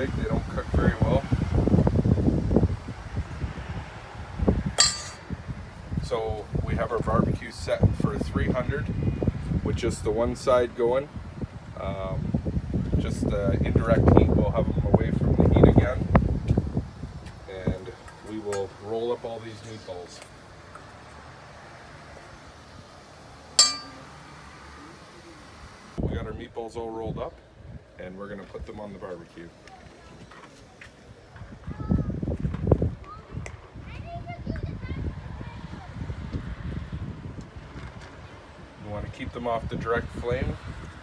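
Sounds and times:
spoon striking metal bowl: 4.8 - 5.2, 23.6 - 24.1.

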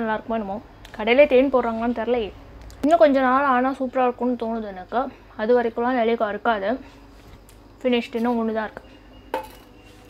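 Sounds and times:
tableware clinking: 9.3 - 9.8.

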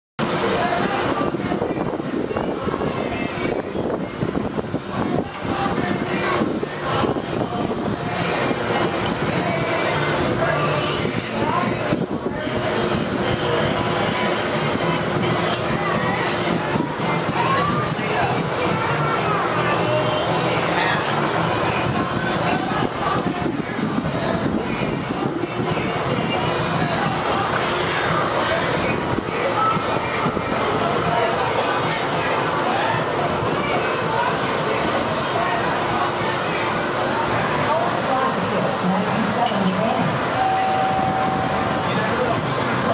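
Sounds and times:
gas furnace burners roaring: 0.2 - 42.9.

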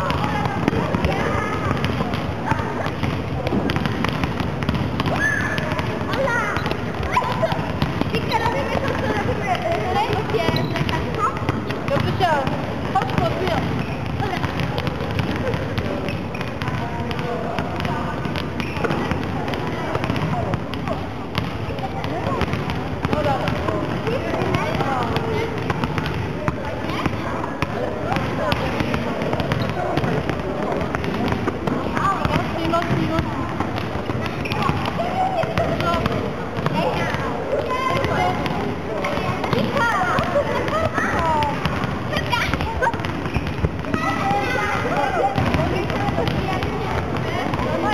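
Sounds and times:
children chattering and calling: 0.0 - 47.9
volleyballs bouncing and struck: 0.0 - 47.9.

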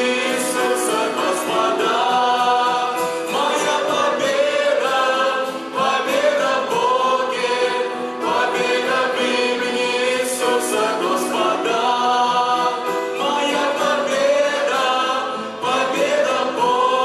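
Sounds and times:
group singing worship song: 0.0 - 17.0.

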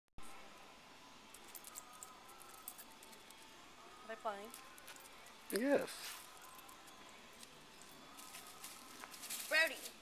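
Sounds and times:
faint outdoor hiss: 0.2 - 10.0.

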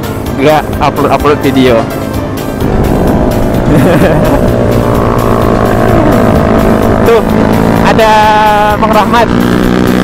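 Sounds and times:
background music: 0.0 - 10.0
motorcycle engine running: 0.0 - 10.0
road and wind noise: 0.0 - 10.0.

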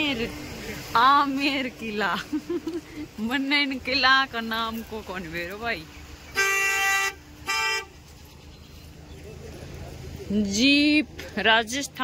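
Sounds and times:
vehicle horn honking: 6.3 - 8.0.

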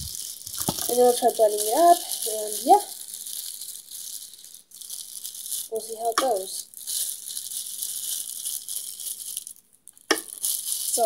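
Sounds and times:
plastic package crinkling: 0.0 - 11.0.

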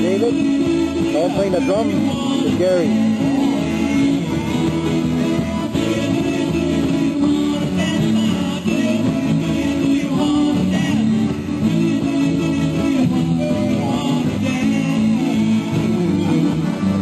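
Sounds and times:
person singing: 0.0 - 17.0
rock band playing: 0.0 - 17.0.

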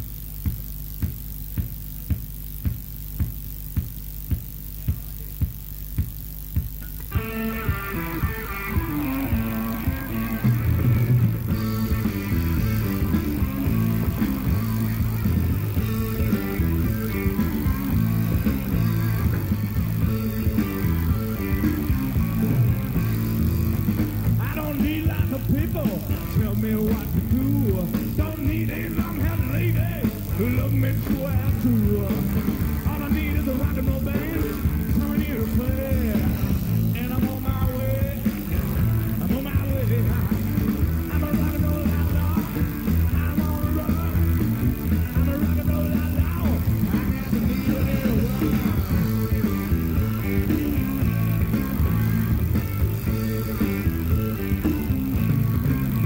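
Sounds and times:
blues-rock band playing live: 6.9 - 56.0
lead guitar with bending notes: 7.0 - 27.8, 37.5 - 56.0.

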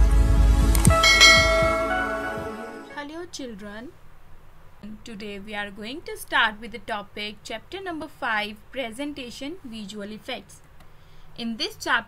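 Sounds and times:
deep bass hit: 0.0 - 2.6
bell-like chime: 0.8 - 2.9.

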